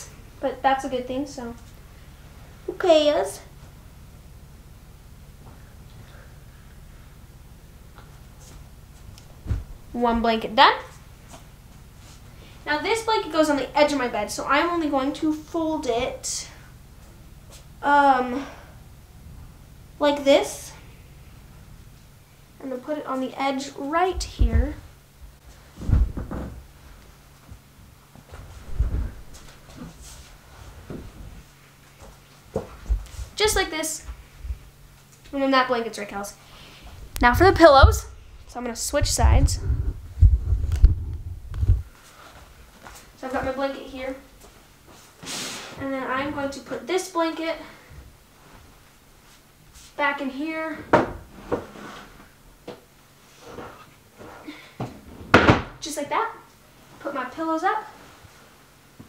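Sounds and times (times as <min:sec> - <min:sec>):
dull low thumps: 0:09.4 - 0:10.0, 0:24.2 - 0:26.8, 0:28.5 - 0:29.5, 0:36.9 - 0:41.9
camera handling thumps and rumble: 0:25.8 - 0:26.7.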